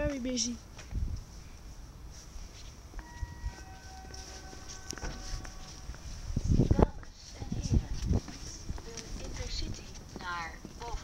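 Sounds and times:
two-note electronic signal tone: 0:03.0 - 0:06.0.

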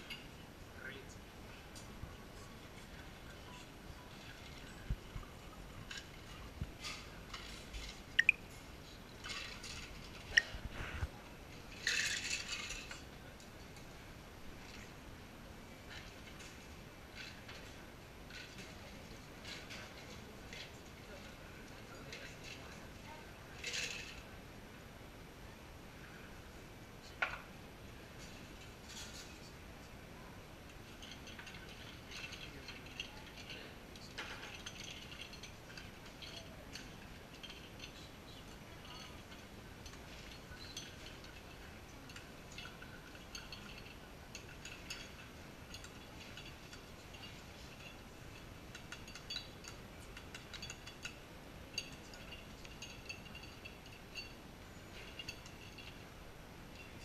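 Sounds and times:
glass and metal barware clinking: 0:03.0 - 0:08.6, 0:11.7 - 0:13.2, 0:30.7 - 0:57.0.

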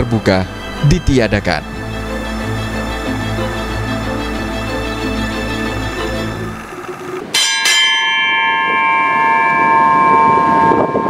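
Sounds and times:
background music: 0:00.0 - 0:07.4
ship's bell ringing: 0:04.7 - 0:11.0.

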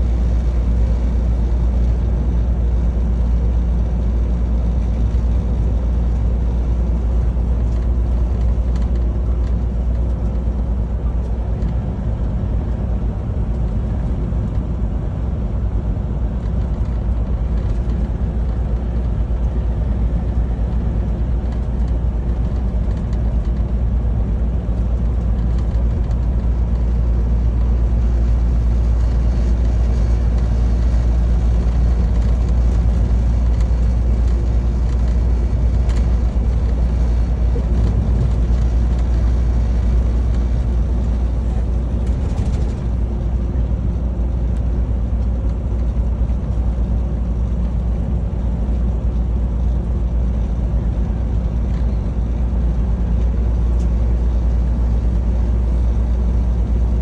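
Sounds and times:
truck engine rumble: 0:00.0 - 0:57.0.

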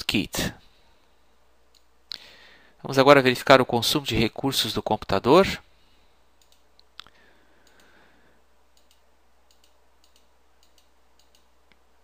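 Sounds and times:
very faint ticks: 0:06.4 - 0:08.0, 0:08.7 - 0:11.9.

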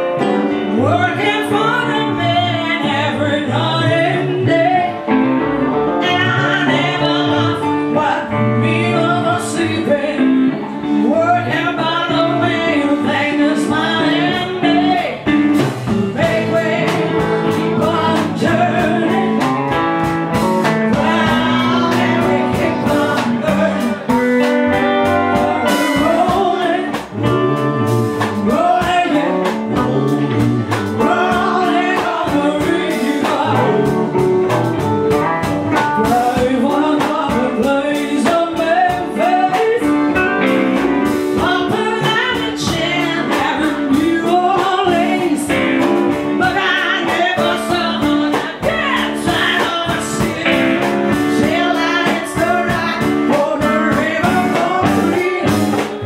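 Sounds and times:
woman singing into a microphone: 0:00.0 - 0:05.2, 0:05.8 - 0:27.4, 0:28.2 - 0:34.2, 0:35.8 - 0:56.0
drums: 0:00.0 - 0:56.0
electric guitar: 0:00.0 - 0:56.0.

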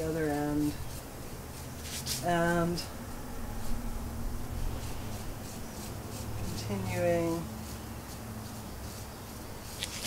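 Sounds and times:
low hum: 0:00.0 - 0:09.6
marker pen scratching on wire: 0:00.1 - 0:02.6, 0:04.7 - 0:10.0.

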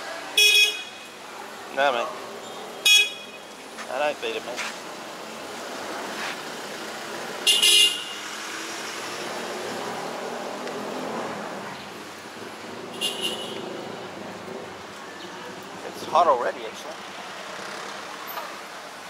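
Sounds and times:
street traffic passing: 0:00.0 - 0:19.0
vehicle horn honking: 0:00.4 - 0:01.1, 0:02.8 - 0:03.4, 0:07.4 - 0:08.3, 0:12.9 - 0:13.6.

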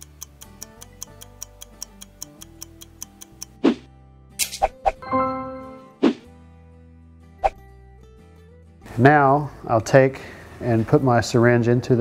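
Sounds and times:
stopwatch ticking: 0:00.0 - 0:03.6
soft background music: 0:00.0 - 0:12.0.

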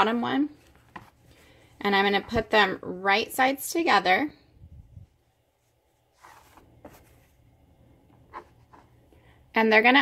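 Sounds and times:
fabric rustling: 0:05.0 - 0:07.4.

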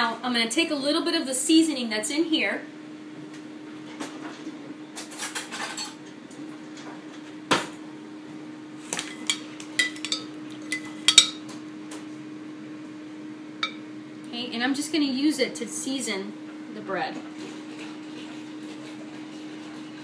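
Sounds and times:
steady low hum: 0:06.0 - 0:18.1.

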